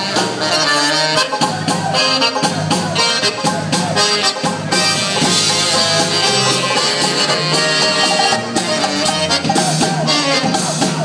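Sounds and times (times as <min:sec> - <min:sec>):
polka band playing: 0:00.0 - 0:11.0.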